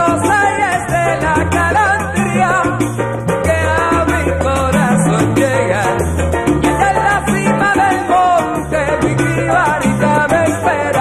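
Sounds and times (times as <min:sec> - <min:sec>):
bass line: 0:00.0 - 0:11.0
percussion: 0:00.0 - 0:11.0.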